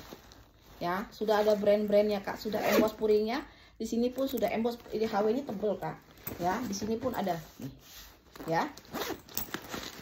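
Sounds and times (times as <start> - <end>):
zipper on nylon bag: 0.8 - 3.2, 7.8 - 10.0.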